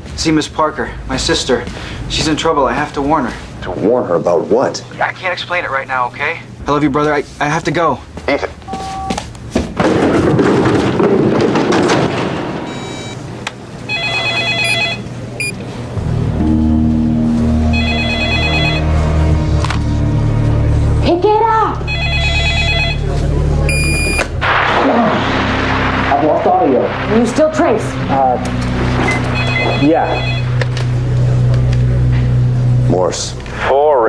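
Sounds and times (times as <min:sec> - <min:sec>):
telephone electronic warbling ring: 0:13.9 - 0:15.5, 0:17.7 - 0:18.9, 0:21.9 - 0:23.0, 0:29.1 - 0:30.6
steady low hum: 0:14.6 - 0:34.0
low dramatic music: 0:15.8 - 0:23.7, 0:24.3 - 0:34.0.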